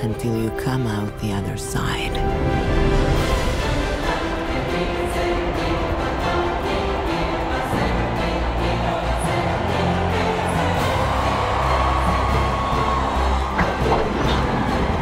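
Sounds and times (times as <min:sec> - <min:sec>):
orchestral music: 0:00.0 - 0:15.0
crowd cheering: 0:04.0 - 0:15.0.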